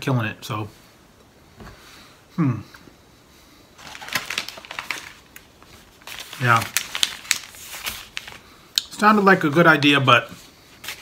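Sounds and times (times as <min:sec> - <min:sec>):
wrapper crinkling: 0:03.8 - 0:10.1.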